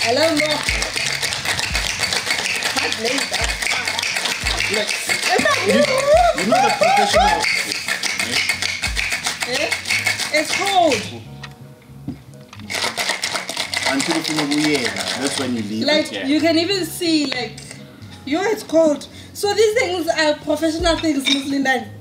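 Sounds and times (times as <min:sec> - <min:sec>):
ice rattling in cocktail shakers: 0:00.0 - 0:11.2, 0:12.6 - 0:16.2
background music: 0:00.0 - 0:22.0.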